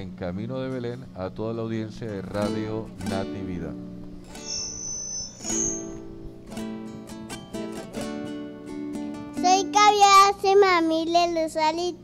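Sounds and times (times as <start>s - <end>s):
acoustic guitar chords: 0.0s - 12.0s
high whining tone: 4.2s - 6.4s.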